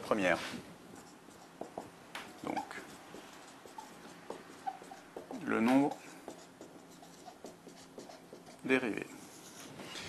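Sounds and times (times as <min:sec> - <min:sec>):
marker squeaking on whiteboard: 0:00.9 - 0:10.0.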